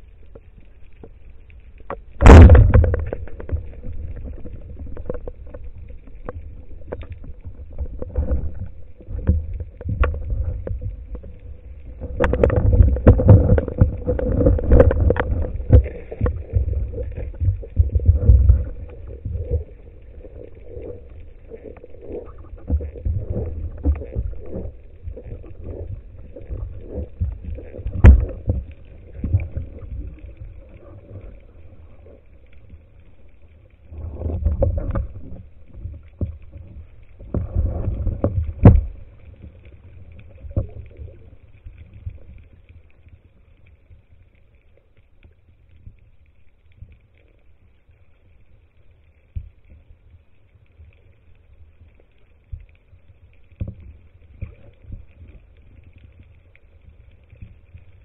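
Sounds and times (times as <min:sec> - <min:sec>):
muffled underwater handling noise: 0:00.0 - 0:43.9
rushes of water: 0:00.0 - 0:44.8, 0:46.7 - 0:58.0.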